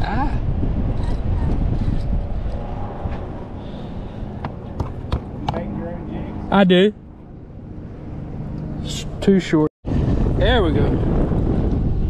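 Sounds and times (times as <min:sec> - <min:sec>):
wind rumble on microphone: 0:00.0 - 0:06.7, 0:09.8 - 0:12.0.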